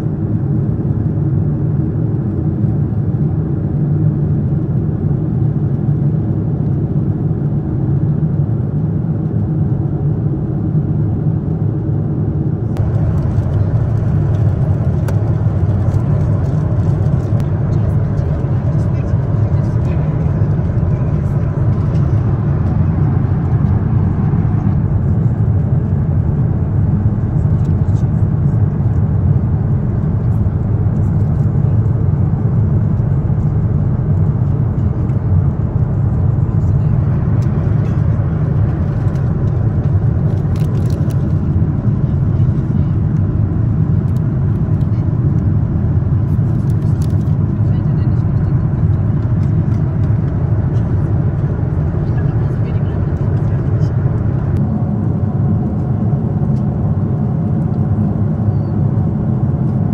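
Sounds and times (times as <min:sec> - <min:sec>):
airliner cabin engine rumble: 0:00.0 - 0:59.9.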